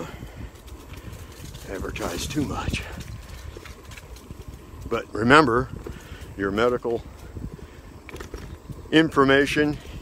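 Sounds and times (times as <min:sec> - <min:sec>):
wind and bicycle riding noise: 0:00.0 - 0:10.0.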